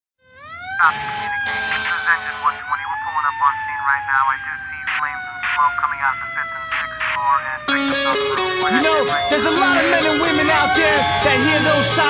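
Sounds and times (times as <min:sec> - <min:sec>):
quick sweeping siren calls: 0:00.2 - 0:07.8
emergency vehicle siren wailing: 0:00.2 - 0:12.0.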